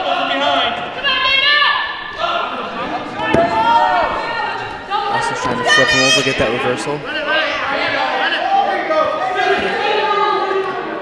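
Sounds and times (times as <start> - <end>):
voices shouting in a hall: 0.0 - 11.0.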